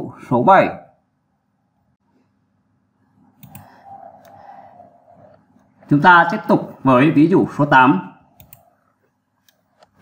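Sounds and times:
faint steady noise: 0.0s - 10.0s
computer mouse clicks: 3.4s - 4.5s, 8.4s - 8.8s.

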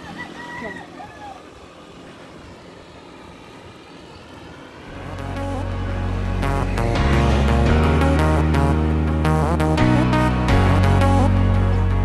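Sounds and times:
road noise while cycling: 0.0s - 12.0s
background music: 4.9s - 12.0s.

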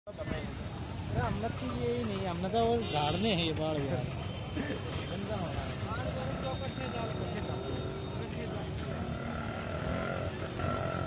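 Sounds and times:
traffic hum: 0.1s - 11.0s.

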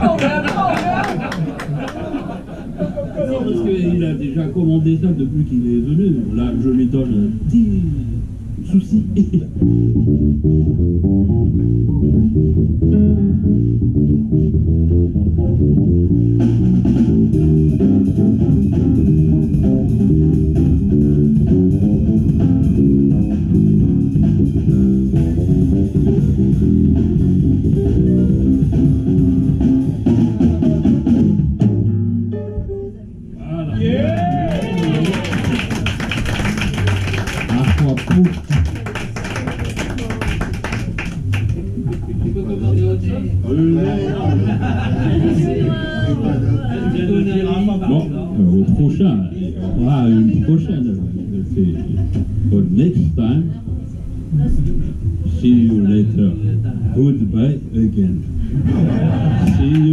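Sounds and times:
electric bass guitar: 5.2s - 59.9s
drum kit: 9.6s - 32.8s.

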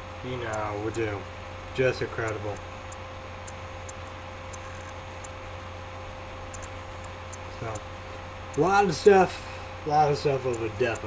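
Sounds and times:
steady low hum: 0.0s - 11.0s
thin steady tone: 0.0s - 11.0s
faint ticks: 0.4s - 0.7s, 1.6s - 5.4s, 6.5s - 7.9s, 10.3s - 11.0s.

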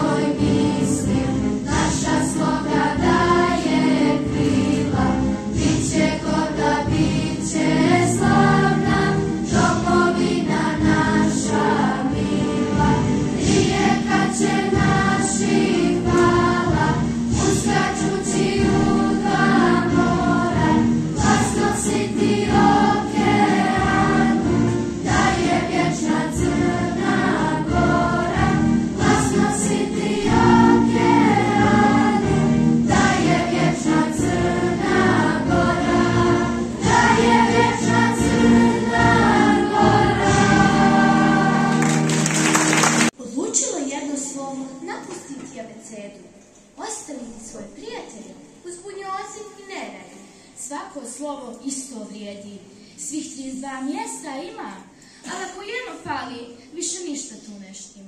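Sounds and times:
children's choir singing: 0.0s - 43.1s.

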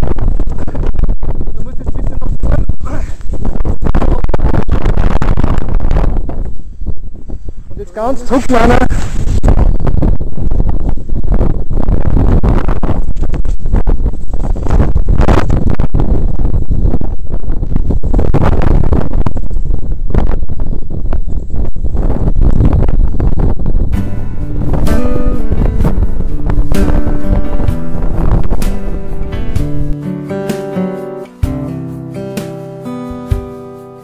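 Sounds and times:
gusty wind buffeting microphone: 0.0s - 30.0s
acoustic guitar music: 23.9s - 34.0s.

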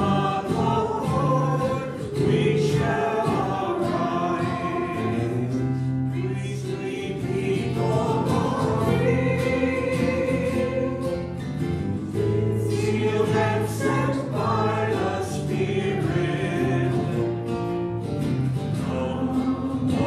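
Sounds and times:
hymn singing: 0.0s - 17.8s, 18.6s - 20.0s.

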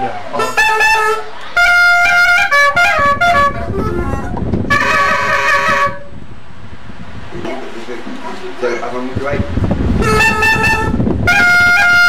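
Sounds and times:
cane clarinet playing notes: 0.4s - 6.1s, 10.0s - 12.0s.

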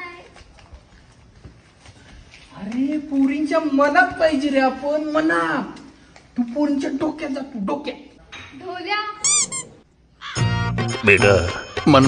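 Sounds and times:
high-pitched squeak: 9.2s - 9.8s.

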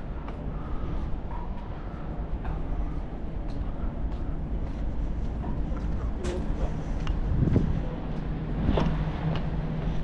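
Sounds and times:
steady low rumble: 0.0s - 10.0s
wind noise: 0.0s - 10.0s.

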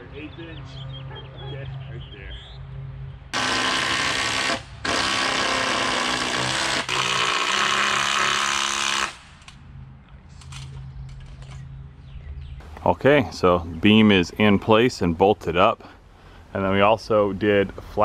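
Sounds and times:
power drill running: 3.4s - 9.2s.

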